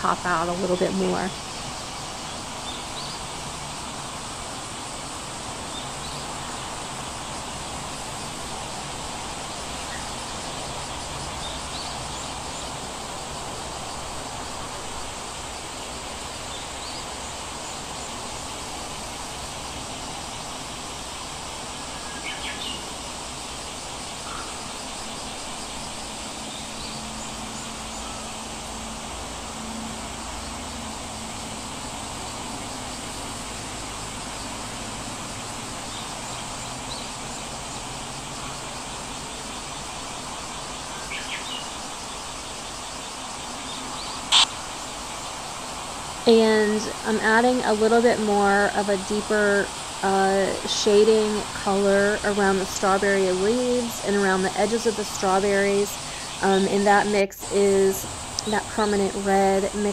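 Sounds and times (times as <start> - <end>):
background hiss: 0.0 - 59.9
faint high chirps: 44.2 - 44.5
sharp click: 44.3 - 44.5.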